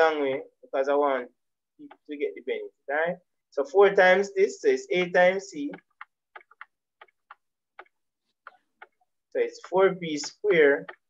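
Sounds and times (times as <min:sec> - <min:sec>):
stylus ticking on a tablet: 0:01.8 - 0:02.3, 0:04.9 - 0:11.0.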